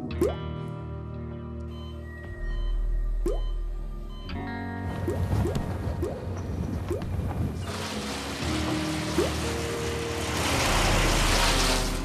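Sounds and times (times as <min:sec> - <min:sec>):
background music sustained notes: 0:00.0 - 0:12.0
wood chipper shredding branches: 0:07.5 - 0:12.0.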